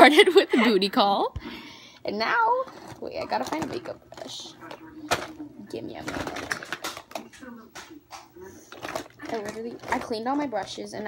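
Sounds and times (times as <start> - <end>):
clicks and rattles: 5.1 - 10.7.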